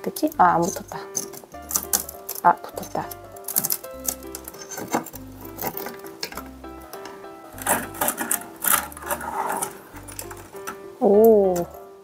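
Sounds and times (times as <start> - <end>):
light background music: 0.0 - 12.0
rice crust crackling: 0.0 - 12.0
metal spoon scraping a plate: 2.8 - 6.4, 7.6 - 10.8.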